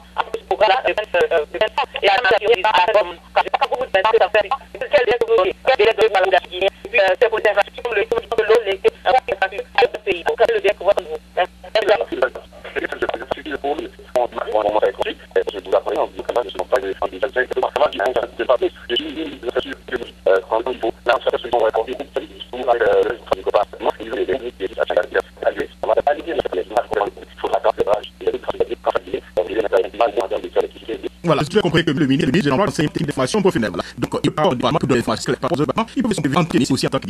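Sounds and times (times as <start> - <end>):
steady low hum: 0.0 - 37.0
voice over telephone line: 0.0 - 37.0.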